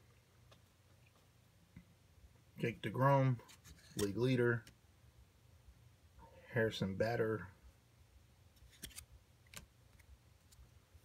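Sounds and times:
baseball card sliding off stack: 8.6s - 9.7s.

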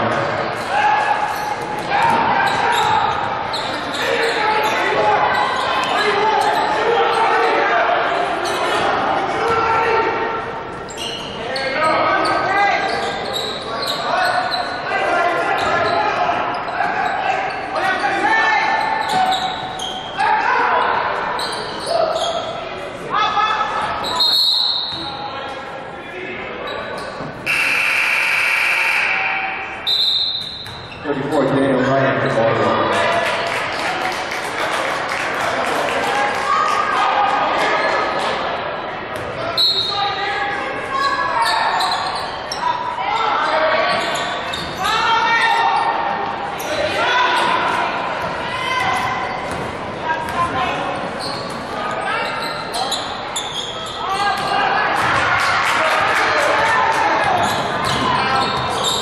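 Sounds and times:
players and spectators calling out: 0.0s - 59.0s
short high whistle blast: 27.5s - 30.6s.

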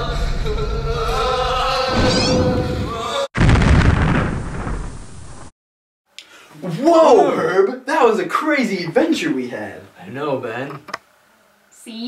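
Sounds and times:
music: 0.0s - 3.3s
explosion blast with deep rumble: 2.0s - 5.5s.

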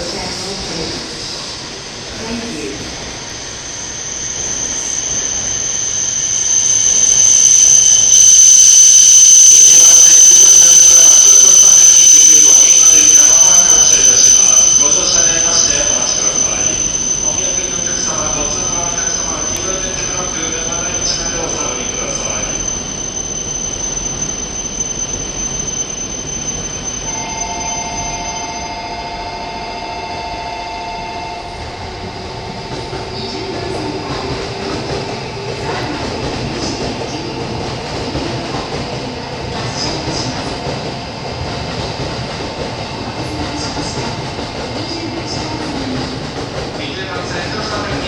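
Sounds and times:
electric train rumbling: 0.0s - 48.0s
wavering whine: 3.6s - 40.5s.

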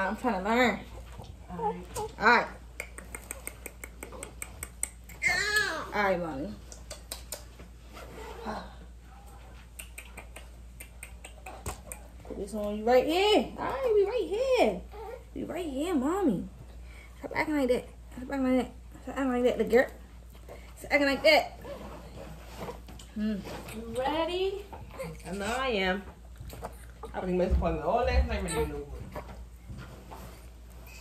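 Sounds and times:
baby vocalizing: 24.8s - 25.6s.

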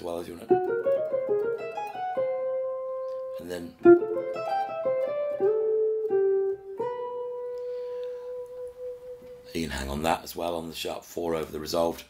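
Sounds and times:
clean electric guitar notes: 0.4s - 9.6s.

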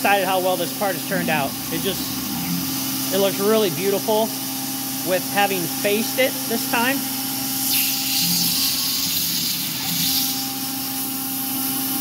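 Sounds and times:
milling machine cutting metal: 0.0s - 12.0s
hiss of air-blast coolant: 1.7s - 12.0s.

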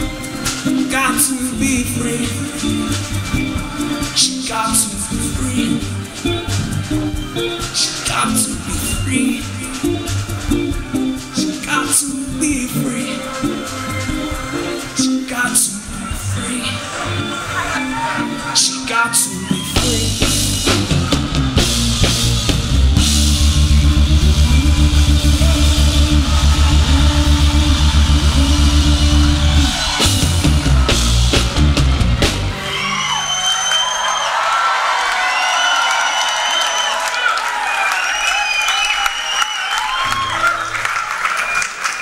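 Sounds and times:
live band playing: 0.0s - 34.4s
audience cheering and whistling: 12.7s - 42.0s.

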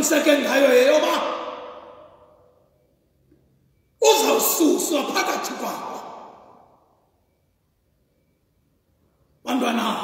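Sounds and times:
man preaching: 0.0s - 2.2s, 4.0s - 6.7s, 9.4s - 10.0s
echo in large church: 0.0s - 10.0s.

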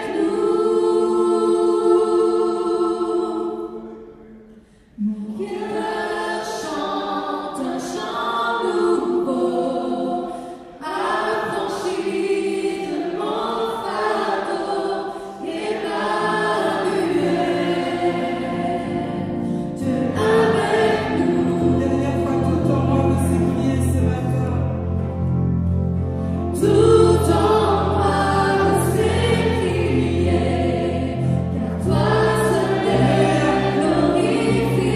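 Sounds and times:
vocal group singing in harmony: 0.0s - 24.7s, 26.2s - 34.9s.

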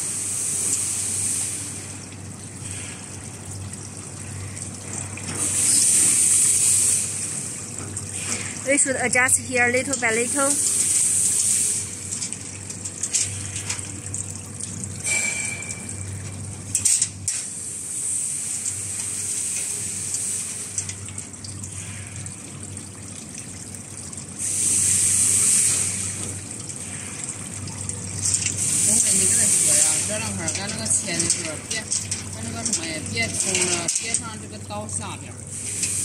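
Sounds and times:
machine hissing scrape: 5.4s - 7.3s, 24.4s - 26.2s, 28.6s - 31.2s.

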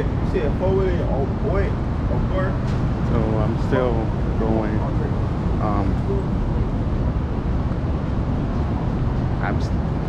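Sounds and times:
city street traffic rumble: 0.0s - 10.0s.

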